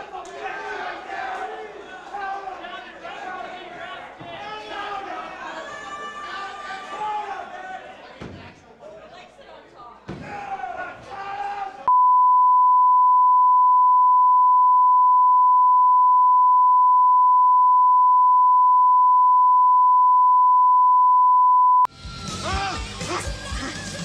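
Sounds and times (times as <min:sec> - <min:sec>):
steady test tone beep: 0:11.9 - 0:21.9.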